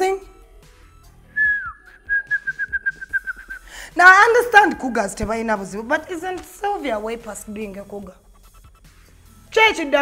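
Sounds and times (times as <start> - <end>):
woman whistling pulsed note: 1.4 - 3.7.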